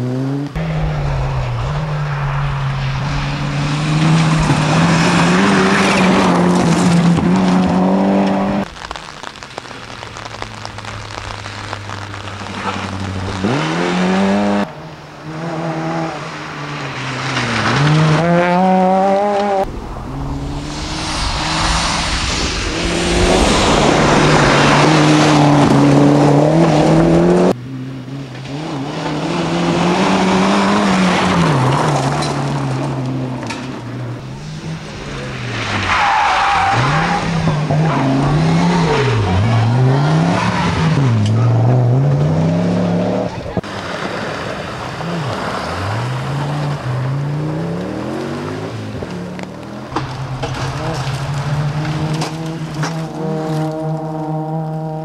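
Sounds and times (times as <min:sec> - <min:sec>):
rally cars passing revving: 0:00.0 - 0:09.4, 0:11.8 - 0:55.0
tyres on gravel: 0:00.6 - 0:14.7, 0:16.4 - 0:27.5, 0:42.5 - 0:54.7.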